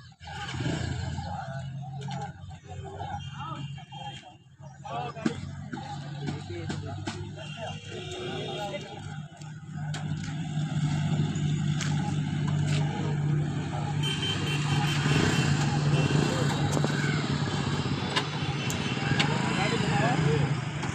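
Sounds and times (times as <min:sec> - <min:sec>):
motorcycle engines running: 0:00.0 - 0:20.9
people's voices: 0:00.0 - 0:20.9.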